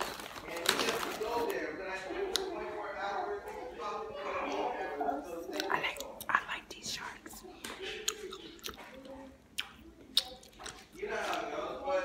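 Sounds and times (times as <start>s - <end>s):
chewing with mouth clicks: 7.7s - 11.5s.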